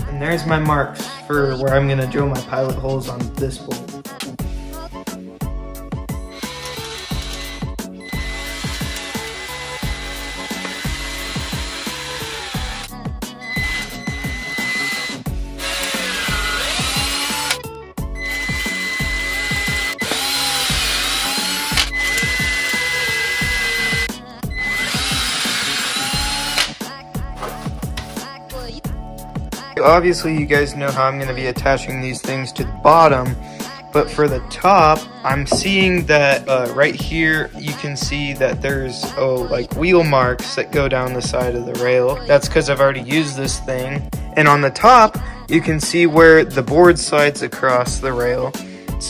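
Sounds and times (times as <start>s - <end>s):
background music with steady beat: 0.0s - 49.0s
cordless drill boring into wood: 6.3s - 12.9s, 13.5s - 17.6s, 18.2s - 26.8s.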